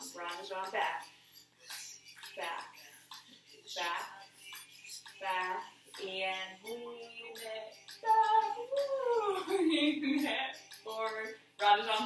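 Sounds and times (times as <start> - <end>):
woman singing slow melody: 3.7 - 12.0.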